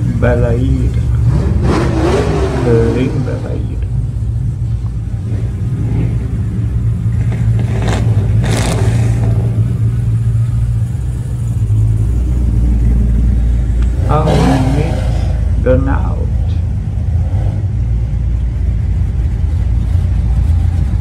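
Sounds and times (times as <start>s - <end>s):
car engine exhaust rumble: 0.0s - 21.0s.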